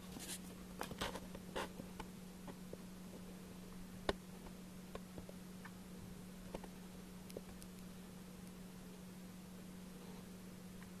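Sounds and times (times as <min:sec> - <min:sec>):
faint scratching and clicking: 0:00.0 - 0:03.3, 0:06.4 - 0:08.6
steady low hum: 0:00.0 - 0:11.0.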